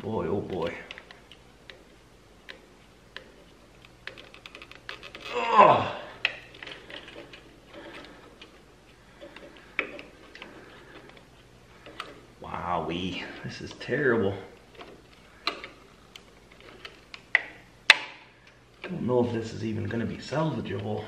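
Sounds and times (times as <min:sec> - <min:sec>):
faint steady hum: 0:00.0 - 0:21.0
man groaning: 0:05.3 - 0:06.2
pliers clicking on wire terminals: 0:13.5 - 0:19.0.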